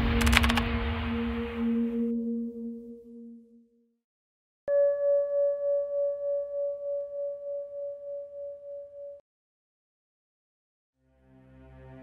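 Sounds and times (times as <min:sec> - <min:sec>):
ringing bell-like tone: 0:01.3 - 0:03.9, 0:04.7 - 0:09.2.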